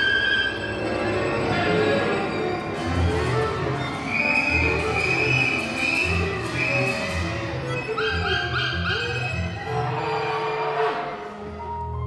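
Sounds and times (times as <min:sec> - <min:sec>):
chamber ensemble playing: 0:00.0 - 0:12.0.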